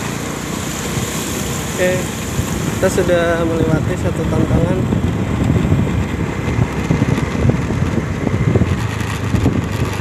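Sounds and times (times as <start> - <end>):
scooter engine running: 0.0 - 10.0
wind buffeting microphone: 0.2 - 10.0.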